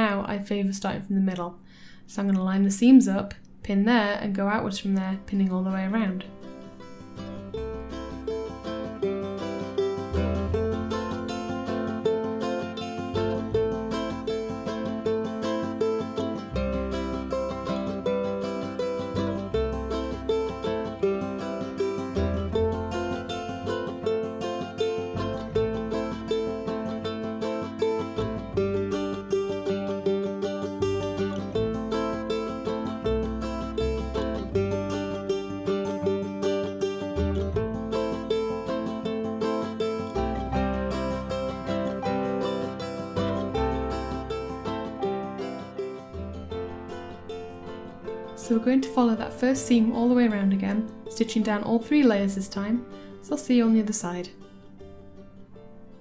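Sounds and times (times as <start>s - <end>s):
plucked string music: 3.9s - 56.0s.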